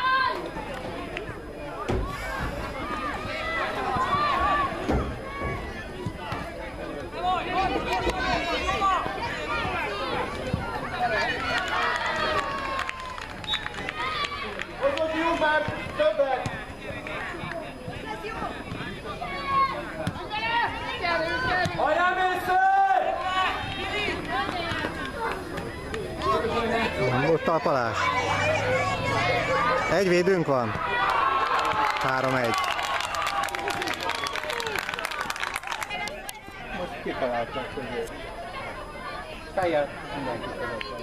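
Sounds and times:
voices calling and shouting: 0:00.0 - 0:41.0.

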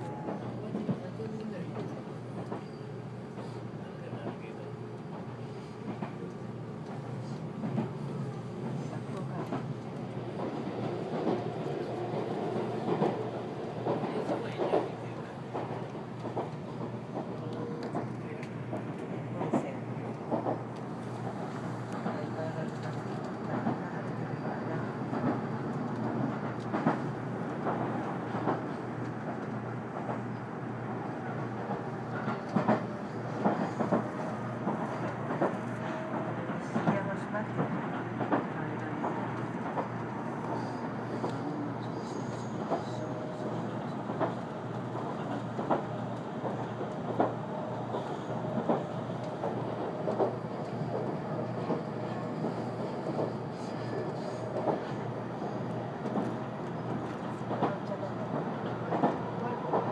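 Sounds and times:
train cabin rumble: 0:00.0 - 0:59.9.

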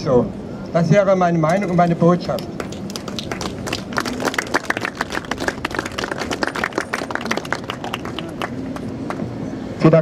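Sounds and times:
small crowd clapping: 0:02.3 - 0:09.2.

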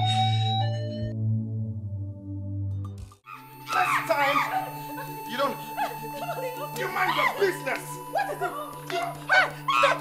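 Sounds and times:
low background music drone: 0:00.1 - 0:10.0
excited voices talking: 0:03.7 - 0:10.0.

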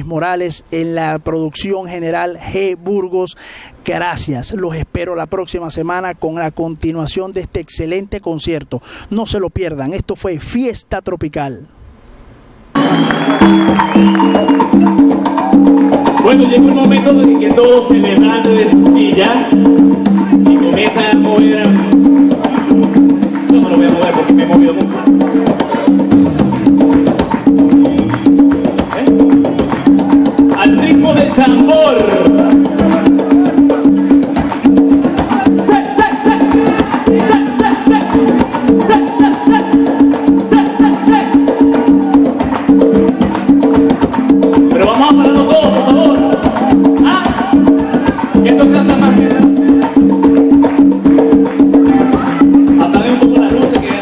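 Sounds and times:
melodic line: 0:12.8 - 0:35.2, 0:42.7 - 0:53.8
clacking percussion: 0:12.8 - 0:54.0
live blues band playing: 0:12.8 - 0:54.0.

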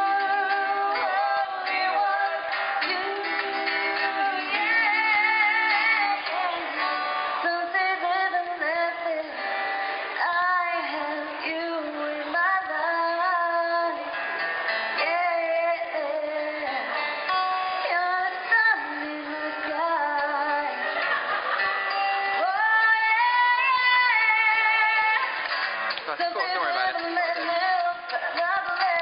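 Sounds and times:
woman singing into microphone: 0:00.0 - 0:25.5, 0:26.1 - 0:29.0
acoustic guitar: 0:00.0 - 0:29.0.

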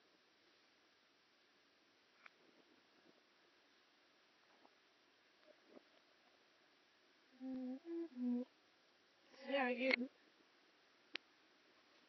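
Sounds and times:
person humming: 0:07.3 - 0:08.5.

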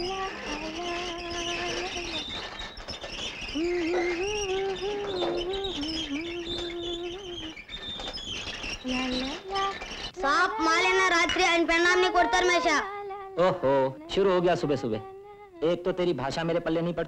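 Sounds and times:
boy singing wordless tune: 0:00.0 - 0:02.5, 0:03.5 - 0:07.6, 0:08.8 - 0:16.6.

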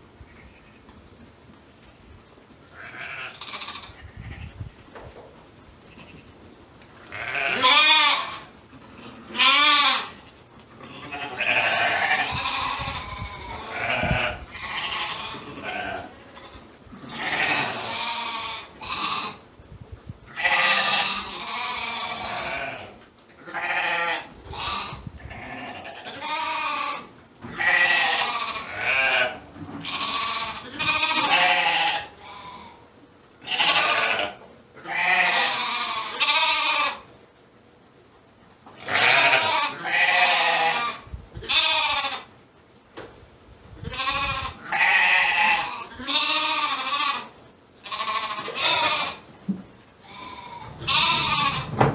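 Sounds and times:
sheep bleating: 0:02.8 - 0:04.4, 0:07.1 - 0:10.2, 0:10.8 - 0:19.4, 0:20.3 - 0:32.8, 0:33.4 - 0:37.0, 0:38.8 - 0:42.3, 0:43.8 - 0:49.2, 0:50.0 - 0:51.8.

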